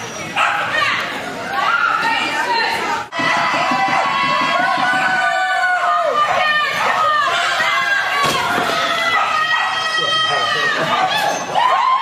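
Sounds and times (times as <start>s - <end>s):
dog barking: 0.4s - 0.7s, 9.1s - 9.8s, 10.9s - 11.3s.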